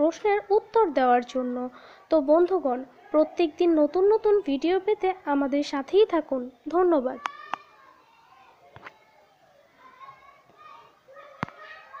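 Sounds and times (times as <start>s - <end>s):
faint high-pitched voices: 6.4s - 12.0s.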